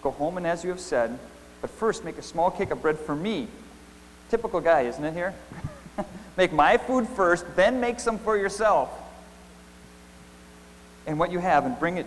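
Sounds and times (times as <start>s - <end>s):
electrical mains hum: 0.0s - 12.0s
faint hiss: 0.0s - 12.0s.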